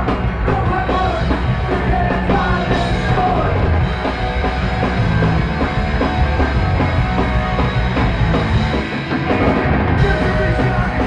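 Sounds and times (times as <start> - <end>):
driving drums: 0.0 - 11.0
punk rock band playing: 0.0 - 11.0.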